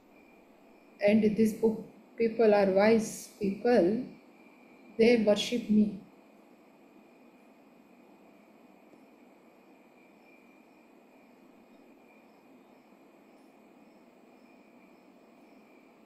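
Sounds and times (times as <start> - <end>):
faint steady hiss: 0.0 - 16.0.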